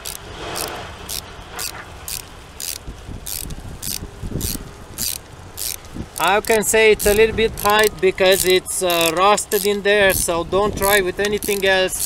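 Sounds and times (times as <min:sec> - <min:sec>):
hand ratchet clicking: 0:00.0 - 0:12.0.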